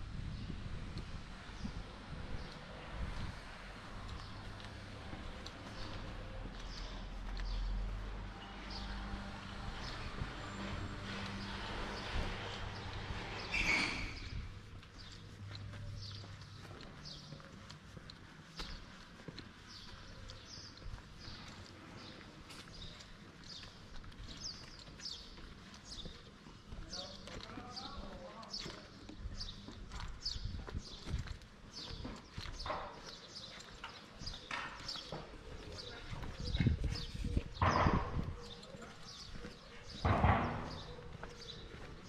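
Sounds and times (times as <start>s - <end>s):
footsteps on pavement: 0.2s - 42.0s.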